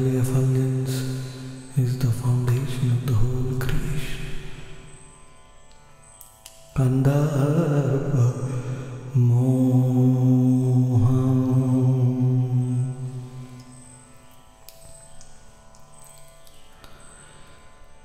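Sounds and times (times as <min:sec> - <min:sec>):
man chanting: 0:00.0 - 0:04.7, 0:06.8 - 0:13.6
devotional music drone: 0:00.0 - 0:18.0.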